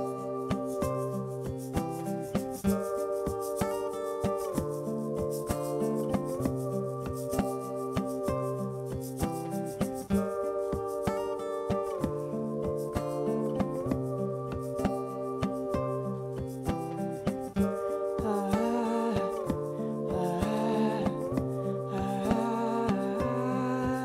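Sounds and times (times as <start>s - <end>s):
looped acoustic guitar chords: 0.0s - 24.0s
percussive taps on guitar: 0.0s - 24.0s.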